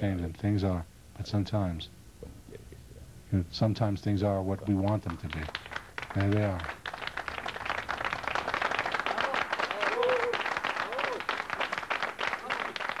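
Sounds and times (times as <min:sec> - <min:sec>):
audience applauding: 0:04.9 - 0:13.0
people calling out: 0:09.0 - 0:11.2.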